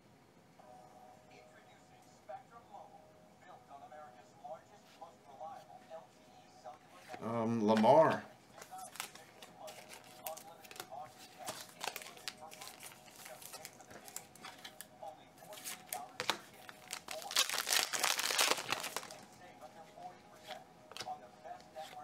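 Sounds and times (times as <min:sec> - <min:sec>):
cards clicking and rustling: 0:07.1 - 0:19.3, 0:20.4 - 0:22.0
foil wrapper crinkling and tearing: 0:08.7 - 0:14.9, 0:15.6 - 0:19.3.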